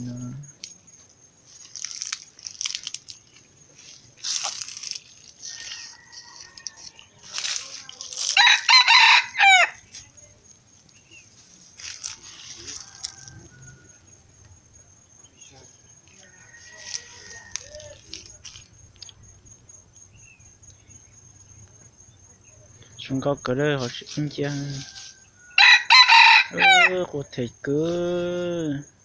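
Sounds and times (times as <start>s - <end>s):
rooster crowing: 5.3s - 9.8s, 12.2s - 14.9s, 15.7s - 18.3s, 24.6s - 27.0s.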